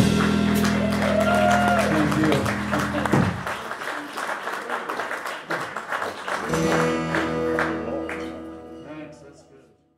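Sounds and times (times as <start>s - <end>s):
audience applauding: 0.0s - 8.7s.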